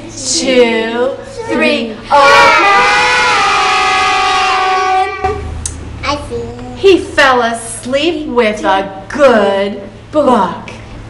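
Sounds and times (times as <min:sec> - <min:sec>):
group shouting a long call: 0:01.4 - 0:05.4.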